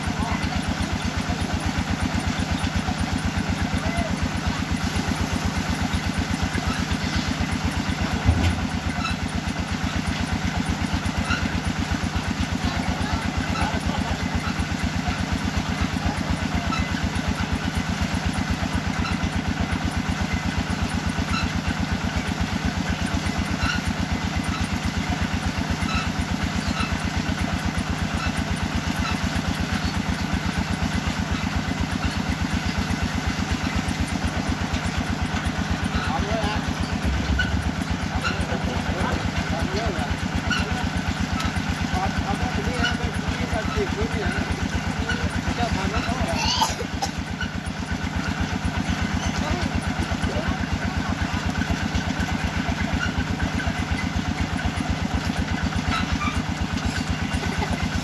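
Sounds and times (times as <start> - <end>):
drilling rig engine running: 0.0 - 58.0.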